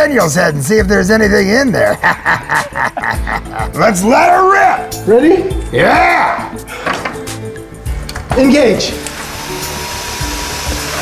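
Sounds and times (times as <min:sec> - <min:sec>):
motor whooshing whir: 0:09.1 - 0:11.0.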